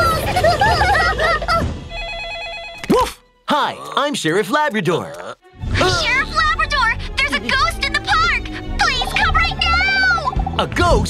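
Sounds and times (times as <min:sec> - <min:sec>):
cartoon telephone ringing: 0:01.9 - 0:02.9.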